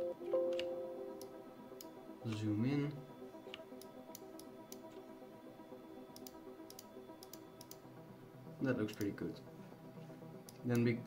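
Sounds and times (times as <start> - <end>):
faint music of sustained tones: 0.0 - 11.0.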